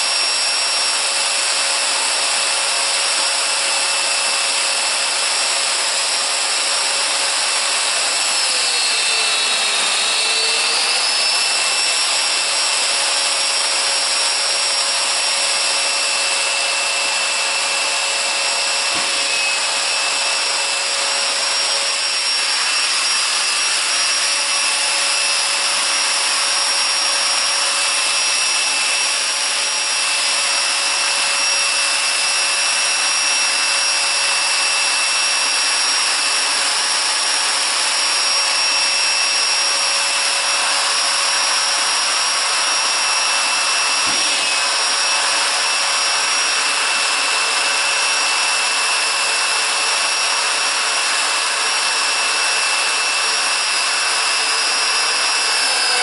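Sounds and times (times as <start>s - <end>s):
dust extractor rushing: 0.0s - 56.0s
power joiner whining: 0.0s - 56.0s.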